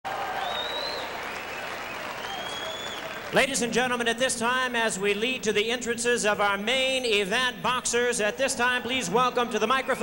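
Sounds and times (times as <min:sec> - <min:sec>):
arena crowd applauding: 0:00.1 - 0:03.9, 0:08.8 - 0:10.0
thin high whistle: 0:00.4 - 0:03.0.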